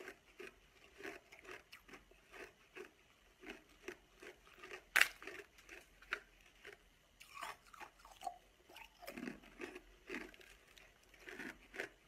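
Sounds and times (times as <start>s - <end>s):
ice crunching between teeth: 0.0s - 12.0s.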